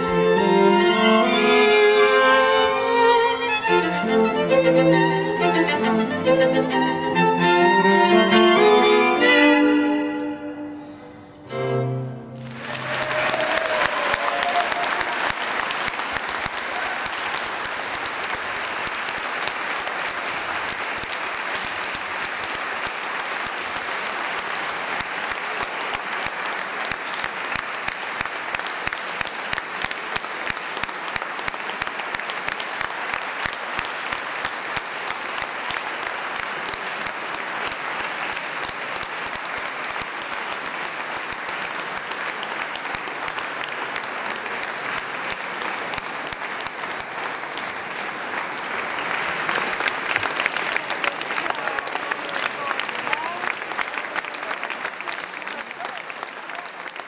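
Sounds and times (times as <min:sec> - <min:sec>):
audience applauding: 0:12.4 - 0:57.0.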